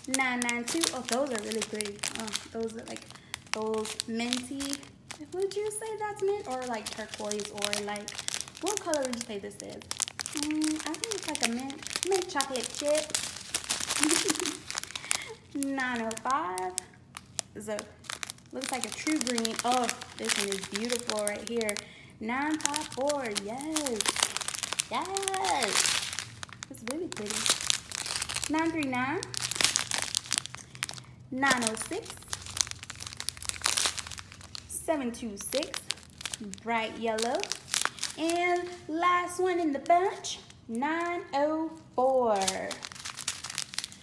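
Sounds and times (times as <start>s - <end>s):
plastic bags crinkling: 0.0s - 44.0s.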